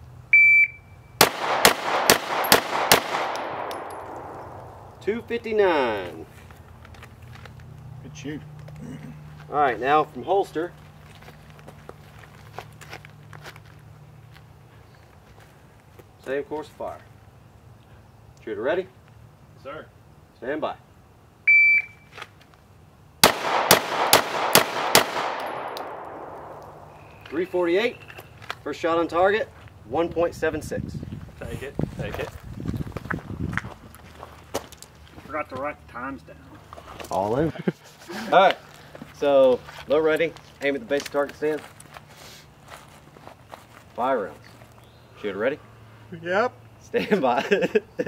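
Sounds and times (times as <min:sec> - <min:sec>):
pistol shots echoing: 0:01.2 - 0:05.0, 0:23.2 - 0:27.1.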